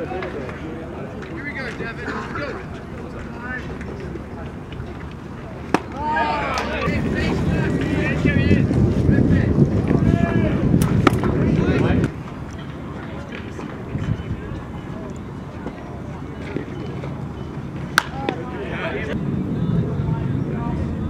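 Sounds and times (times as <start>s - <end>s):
players shouting calls: 5.6s - 8.6s, 10.0s - 19.2s
wind rumbling on microphone: 6.2s - 15.6s, 18.8s - 21.0s
baseball popping into mitt: 18.0s - 18.4s.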